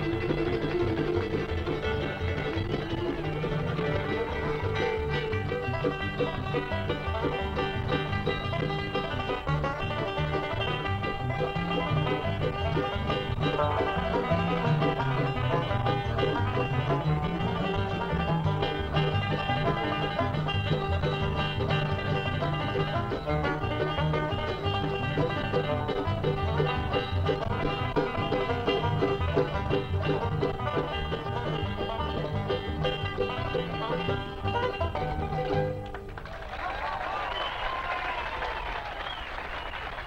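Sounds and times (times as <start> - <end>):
acoustic guitar: 0.0 - 36.1
mandolin: 0.0 - 36.3
banjo: 0.0 - 36.4.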